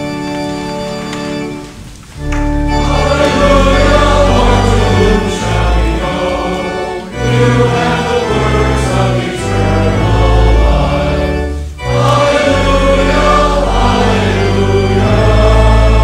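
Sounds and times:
congregation singing: 0:00.0 - 0:16.0
organ accompaniment: 0:00.0 - 0:16.0.

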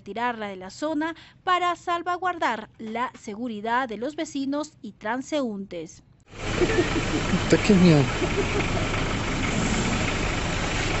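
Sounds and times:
street noise: 0:06.3 - 0:11.0
vehicle engine idling: 0:06.3 - 0:11.0.

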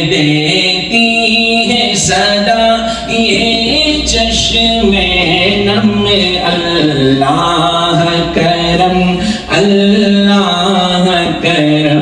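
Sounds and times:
man chanting slow melody: 0:00.0 - 0:12.0.

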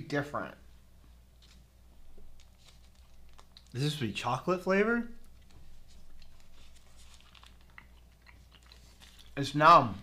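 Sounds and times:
faint chewing: 0:02.2 - 0:03.9, 0:05.2 - 0:09.4.

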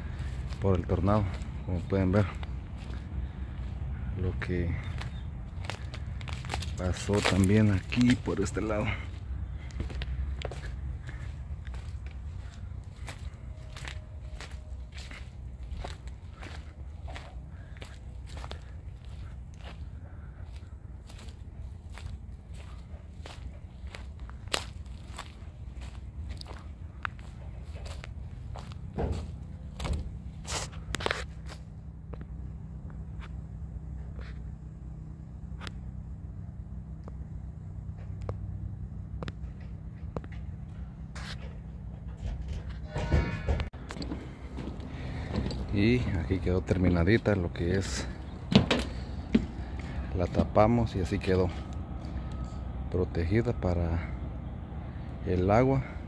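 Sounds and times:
footsteps on dry leaves: 0:00.0 - 0:31.8, 0:43.8 - 0:52.6
steady low rumble: 0:00.0 - 0:56.0.

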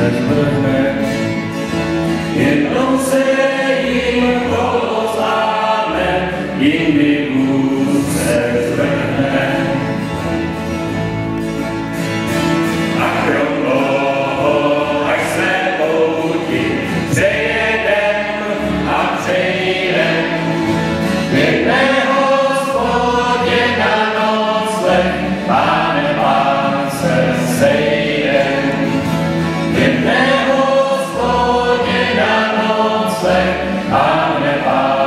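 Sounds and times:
group singing: 0:00.0 - 0:10.9, 0:12.6 - 0:35.0
acoustic guitar: 0:00.0 - 0:35.0
double bass: 0:00.0 - 0:35.0.

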